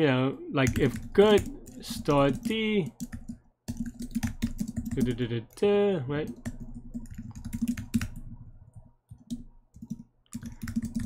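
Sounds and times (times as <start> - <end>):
computer keyboard keystrokes: 0.7 - 5.2, 6.3 - 11.0.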